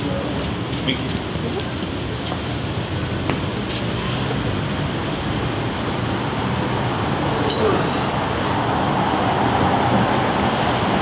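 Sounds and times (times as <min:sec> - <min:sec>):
rumble of passing vehicles: 0:00.0 - 0:11.0.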